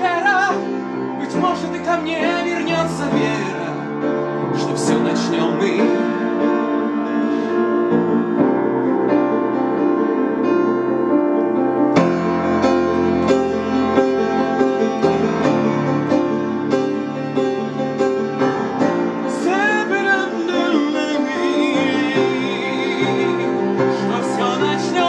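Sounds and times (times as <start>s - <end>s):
man singing: 0.0s - 6.8s, 19.2s - 25.0s
upright piano chords: 0.0s - 25.0s.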